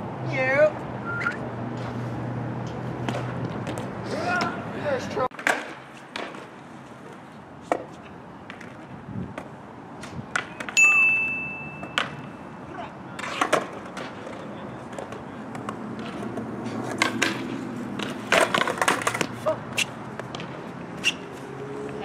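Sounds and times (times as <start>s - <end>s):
skateboard wheels rolling on concrete: 0.0s - 22.0s
skateboard clacking on handrail: 13.2s - 20.6s.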